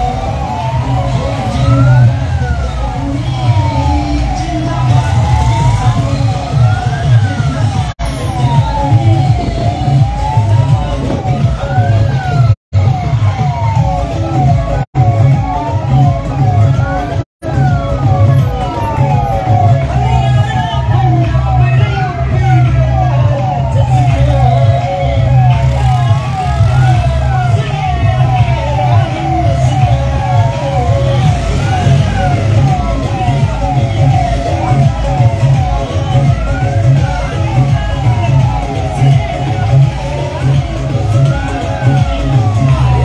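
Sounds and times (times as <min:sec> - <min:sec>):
pulsing low rhythm: 0:00.0 - 0:43.0
sliding electronic siren tones: 0:00.0 - 0:43.0.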